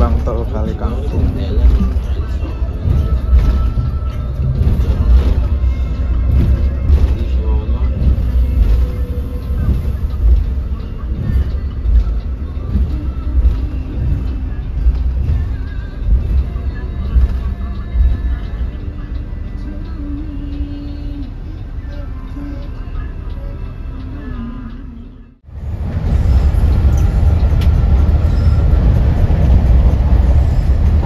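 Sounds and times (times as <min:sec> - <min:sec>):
bus engine rumble: 0:00.0 - 0:31.0
music playing: 0:00.0 - 0:31.0.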